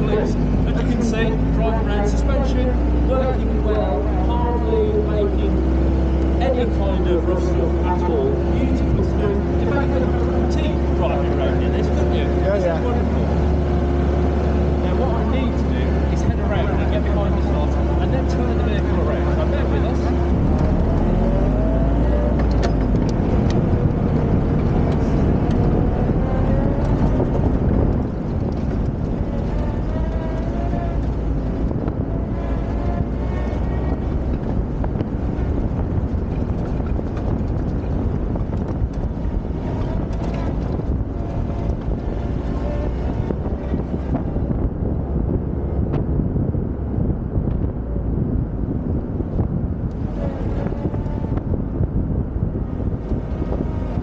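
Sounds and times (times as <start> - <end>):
heavy low rumble: 0.0 - 54.0
vehicle engine whine: 0.0 - 54.0.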